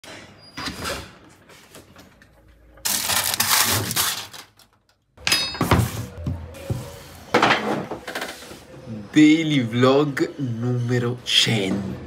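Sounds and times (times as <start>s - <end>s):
aluminium foil crinkling: 2.8s - 4.9s.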